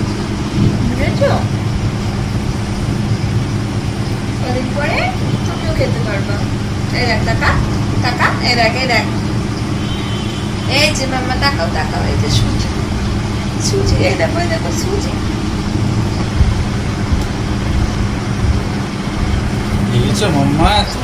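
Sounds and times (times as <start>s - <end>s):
constant low hum: 0.0s - 21.0s
low rumble: 0.0s - 21.0s.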